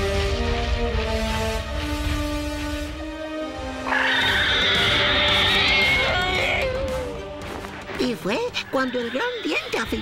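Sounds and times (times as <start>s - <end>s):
background music: 0.0s - 10.0s
cartoon dinosaur roaring: 3.9s - 6.7s.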